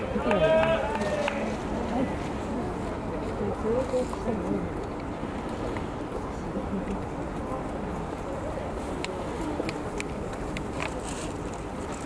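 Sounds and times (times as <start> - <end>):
voices calling out: 0.0 - 2.3.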